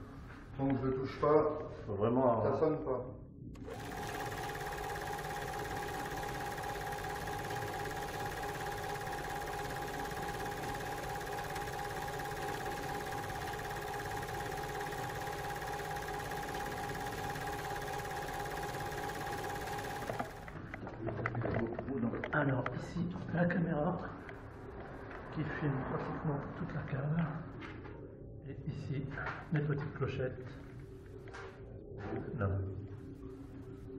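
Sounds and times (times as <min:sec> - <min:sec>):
film projector hiss and hum: 0:03.6 - 0:20.8.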